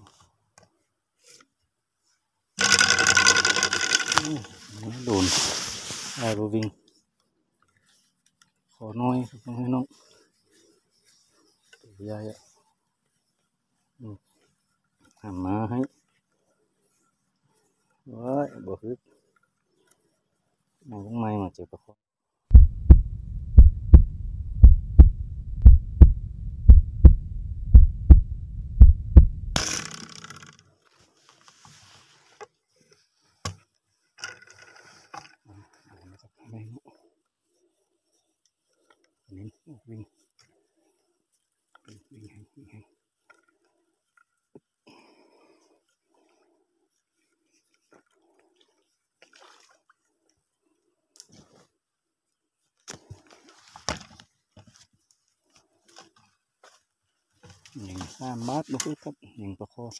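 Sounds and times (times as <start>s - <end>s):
slingshot buzzing whirr: 2.6s - 4.2s
heartbeat thumps: 22.5s - 29.6s.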